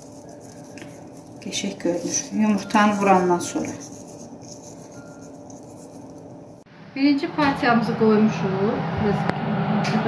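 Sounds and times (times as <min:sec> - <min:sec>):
fingertips rubbing seeds: 0:00.0 - 0:06.6.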